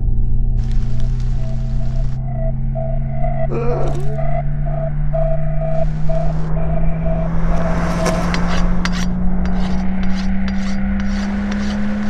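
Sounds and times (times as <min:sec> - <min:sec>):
low rising drone: 0:00.0 - 0:12.0
short repeating tone: 0:01.4 - 0:08.9
rasping scraping noise: 0:07.2 - 0:12.0.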